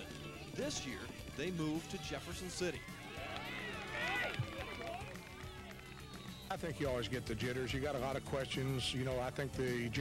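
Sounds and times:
people shouting: 1.8 - 6.2.

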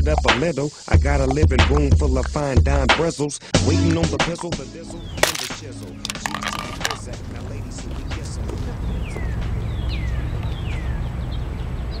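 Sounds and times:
songbird whistling: 8.9 - 11.3.

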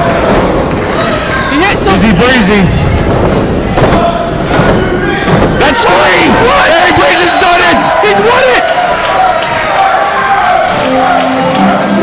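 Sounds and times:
voices shouting: 3.8 - 12.0.

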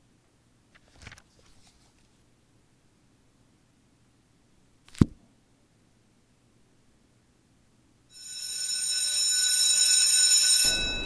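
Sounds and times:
high steady multi-tone ringing: 8.1 - 11.0.

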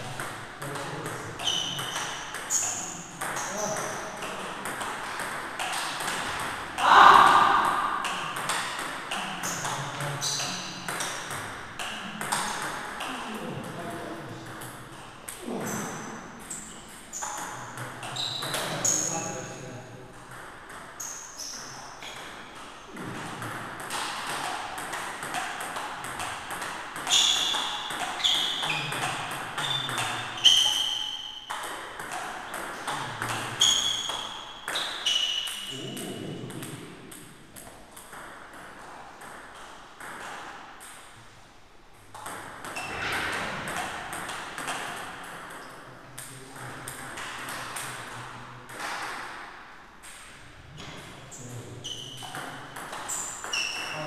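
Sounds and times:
short high squeaks: 1.4 - 3.5, 27.1 - 29.0, 29.6 - 31.5, 33.6 - 35.7, 53.1 - 54.0.

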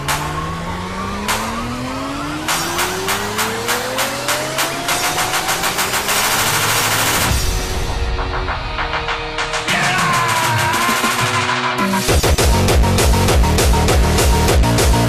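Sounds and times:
drum roll: 2.5 - 15.0
heavy bass kick: 12.1 - 15.0.

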